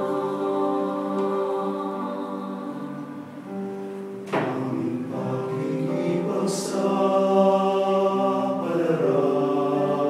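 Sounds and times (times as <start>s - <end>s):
mixed choir singing in harmony: 0.0s - 10.0s.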